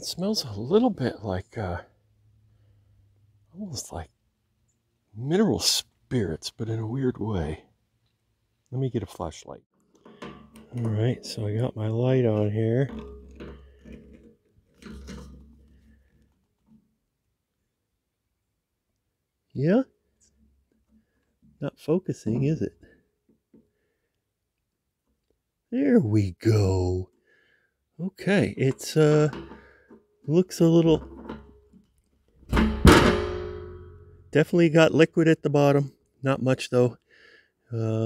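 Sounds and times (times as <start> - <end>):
light clicks and knocks: 9.8 - 16.9.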